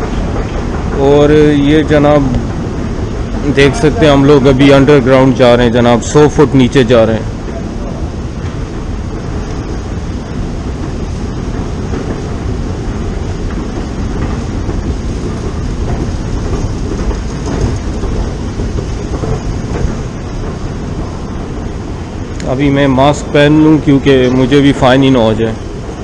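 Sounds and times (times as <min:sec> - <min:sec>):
escalator mechanical rumble: 0:00.0 - 0:26.0.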